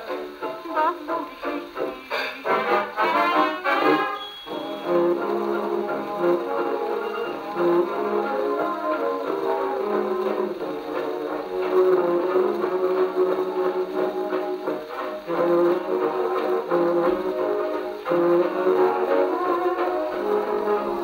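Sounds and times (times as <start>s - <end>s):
dance orchestra with brass: 0.0s - 21.0s.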